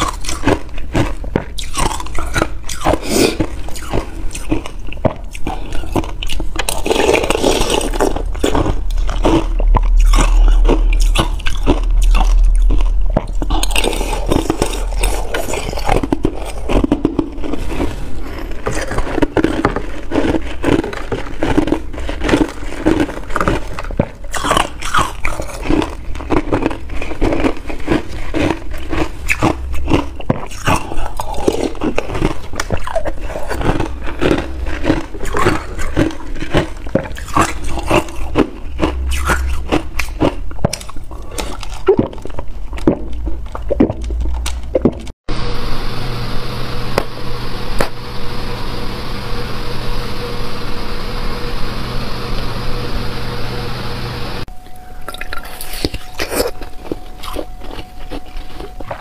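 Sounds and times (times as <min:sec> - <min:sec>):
ice being chewed: 0:00.0 - 0:45.2, 0:54.5 - 0:59.0.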